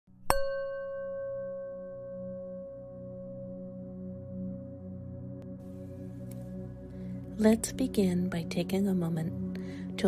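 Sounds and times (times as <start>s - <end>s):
singing bowl ringing: 0.3s - 5.2s.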